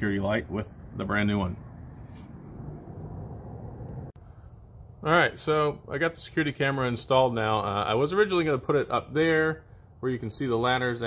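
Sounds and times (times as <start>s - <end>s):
low outdoor background rumble: 0.0s - 10.1s.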